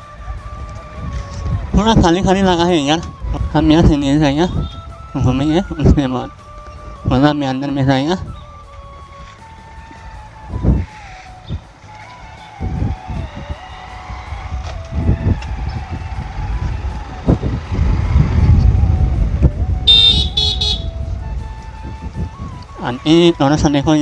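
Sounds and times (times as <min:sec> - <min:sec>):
faint music with wavering tune: 0:00.0 - 0:17.2
low street rumble: 0:00.0 - 0:24.0
high-pitched tooting: 0:19.9 - 0:21.0.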